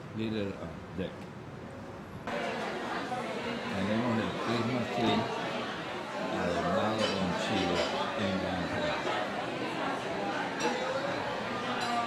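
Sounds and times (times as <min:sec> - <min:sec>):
people talking: 0:02.3 - 0:12.0.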